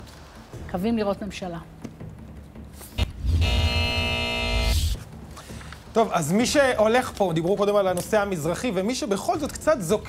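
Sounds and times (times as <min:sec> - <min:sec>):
bass-heavy synth chord: 0:03.0 - 0:05.0.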